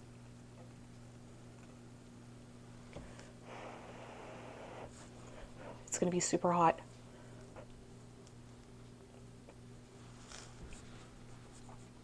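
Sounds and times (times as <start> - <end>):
steady low hum: 0.0 - 12.0
soft hiss: 2.7 - 8.8.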